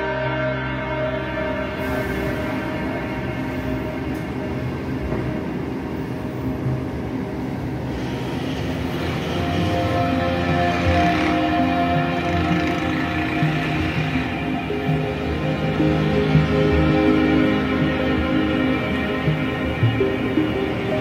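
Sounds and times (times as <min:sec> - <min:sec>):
dark ambient droning music: 0:00.0 - 0:21.0.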